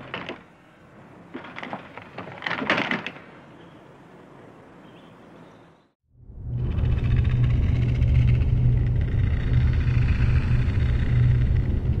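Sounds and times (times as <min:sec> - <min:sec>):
deep rumbling drone: 0:06.1 - 0:12.0.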